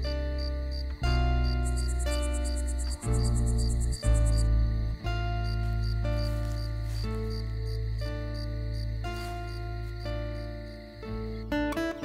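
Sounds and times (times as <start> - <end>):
crickets chirping: 0.0 - 12.0
soft music with low chords: 0.0 - 12.0.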